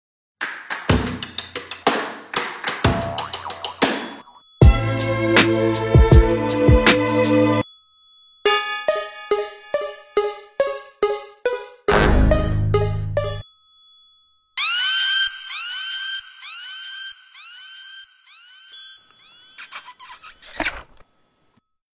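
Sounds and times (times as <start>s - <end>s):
drum beat with bass drum: 0.8s - 7.6s.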